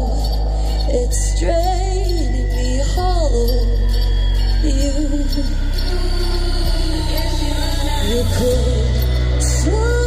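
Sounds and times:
heavy steady bass: 0:00.0 - 0:10.0.

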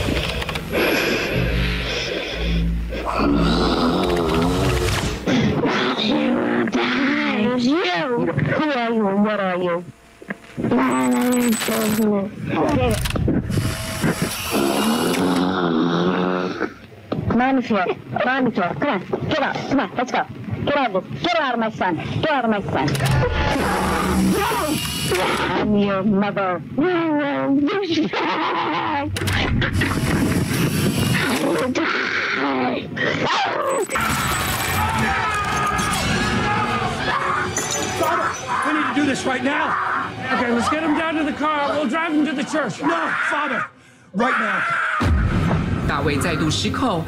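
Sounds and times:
music: 0:00.0 - 0:05.3
boy groaning: 0:02.9 - 0:07.4
growling voice shouting: 0:02.9 - 0:08.0, 0:23.1 - 0:25.8, 0:31.2 - 0:41.8.

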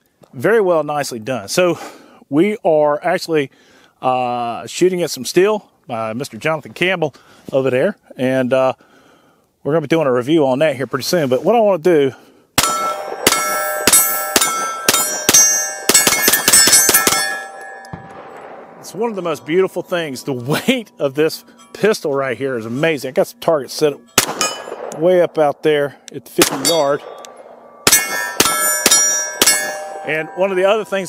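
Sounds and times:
pistol shots: 0:12.6 - 0:19.6, 0:24.2 - 0:25.5, 0:26.4 - 0:30.3
steel targets ringing: 0:12.6 - 0:31.0.

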